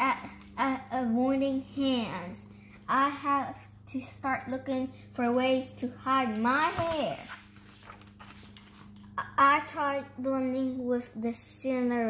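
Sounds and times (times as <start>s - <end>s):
low steady hum: 0.0s - 12.0s
paper page rustling: 6.7s - 9.1s.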